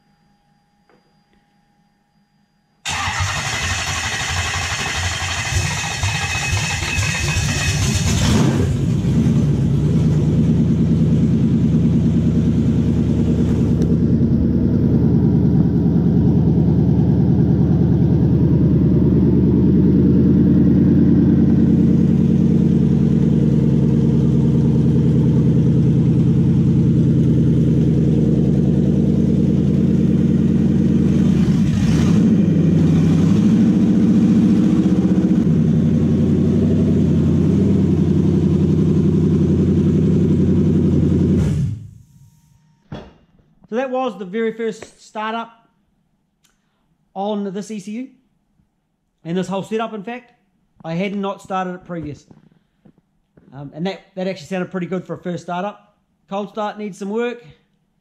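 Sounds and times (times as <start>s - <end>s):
car engine starting and idling: 2.8s - 42.6s.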